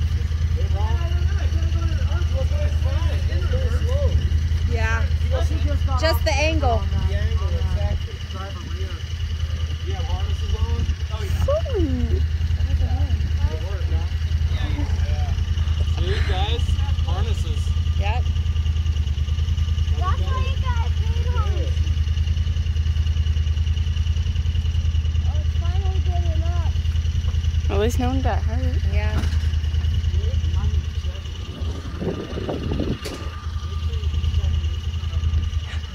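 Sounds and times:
indistinct voices talking: 0.0s - 35.9s
utility vehicle engine idling: 0.0s - 35.9s.

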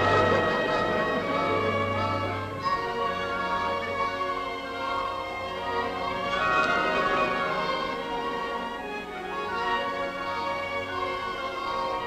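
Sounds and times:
orchestral music with violins: 0.0s - 12.0s.

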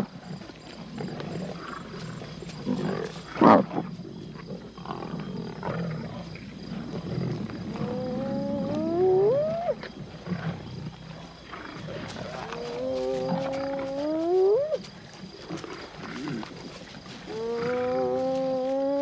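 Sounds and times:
lions growling and snarling: 0.0s - 19.0s
lion cub whining call: 7.8s - 9.8s.

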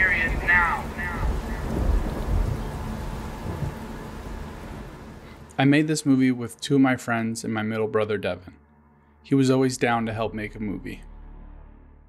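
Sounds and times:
rolling thunder rumble: 0.0s - 5.4s
rain: 0.0s - 6.4s.

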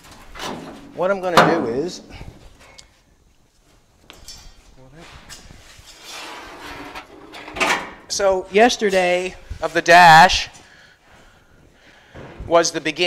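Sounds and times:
metal scraping: 5.0s - 7.9s.

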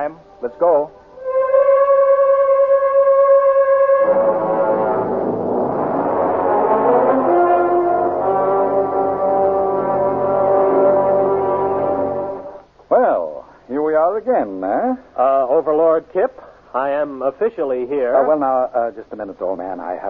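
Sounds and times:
brass instruments playing chords: 0.0s - 12.7s
brass long held note: 1.0s - 12.6s.

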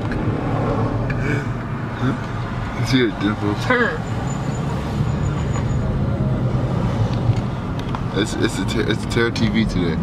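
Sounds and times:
car road rumble: 0.0s - 10.0s.

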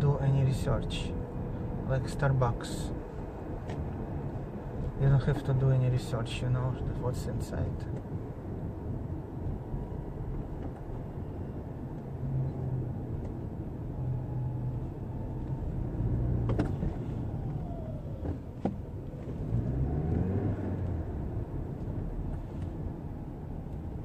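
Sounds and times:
car engine and road noise: 0.0s - 24.0s.

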